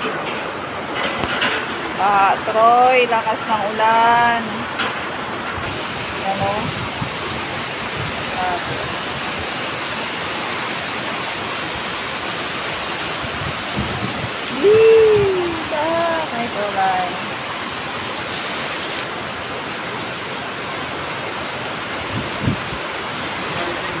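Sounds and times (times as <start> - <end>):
heavy rain pouring: 0.0 - 24.0
person calling out: 14.5 - 16.3.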